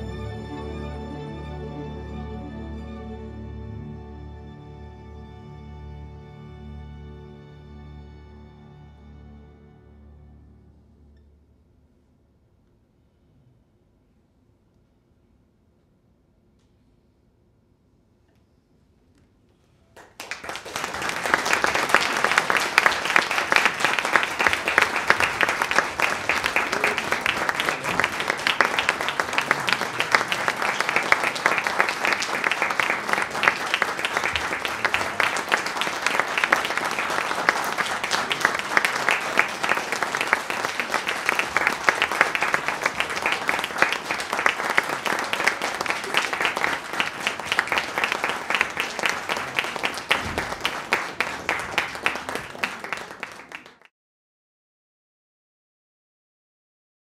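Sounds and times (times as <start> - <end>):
audience applause: 0.0 - 1.8, 20.0 - 53.9.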